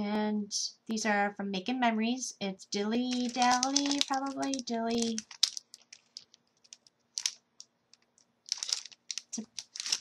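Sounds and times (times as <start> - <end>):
packaging crinkling and rustling: 3.0 - 10.0.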